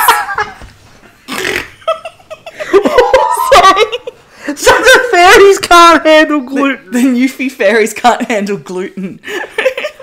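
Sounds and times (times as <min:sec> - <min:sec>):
person laughing and giggling: 0:01.3 - 0:04.2, 0:09.3 - 0:10.0.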